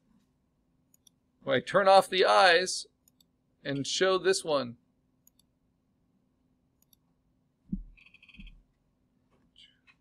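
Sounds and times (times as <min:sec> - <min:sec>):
computer mouse clicks: 0:00.9 - 0:01.2, 0:03.0 - 0:03.3, 0:05.2 - 0:05.5, 0:06.8 - 0:07.1, 0:07.8 - 0:08.6.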